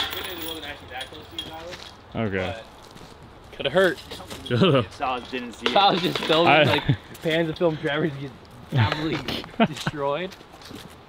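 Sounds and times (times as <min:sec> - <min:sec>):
chains jangling and ringing: 0:00.0 - 0:01.8
disc striking chains: 0:00.0 - 0:01.8, 0:04.4 - 0:06.6.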